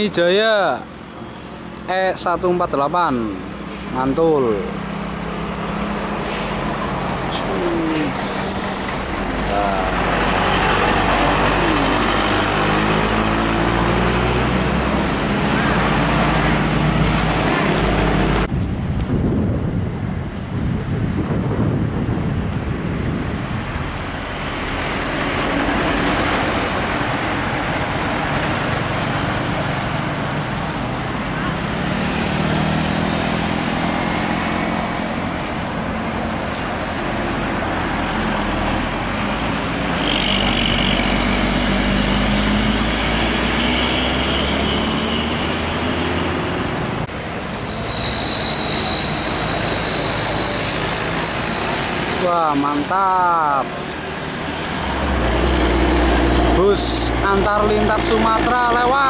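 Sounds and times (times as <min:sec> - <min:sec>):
diesel bus engine: 0:00.0 - 0:59.0
tyre and traffic noise: 0:00.0 - 0:59.0.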